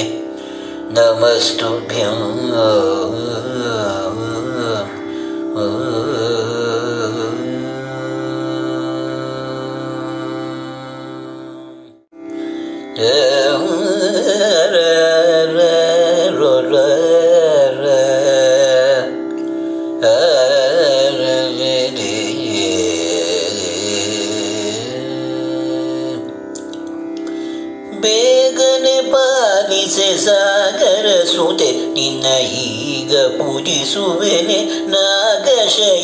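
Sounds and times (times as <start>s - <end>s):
man singing: 0.0s - 12.0s, 12.8s - 26.6s, 27.2s - 36.0s.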